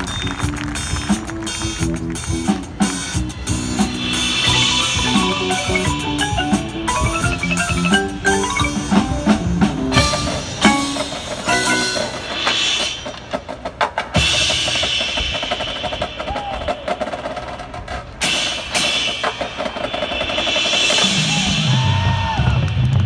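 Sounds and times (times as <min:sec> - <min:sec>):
marching band music: 0:00.0 - 0:22.3
drum rolls and hits: 0:00.0 - 0:23.0.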